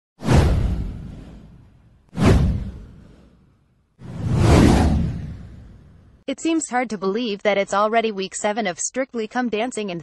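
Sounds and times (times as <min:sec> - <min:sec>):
deep boom: 0:00.2 - 0:03.5, 0:04.1 - 0:06.2
whoosh sound effect: 0:00.2 - 0:06.0.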